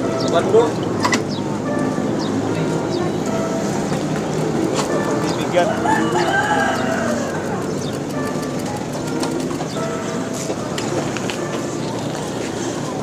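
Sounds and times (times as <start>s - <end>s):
street background noise: 0.0s - 13.0s
rooster crowing: 5.6s - 7.7s.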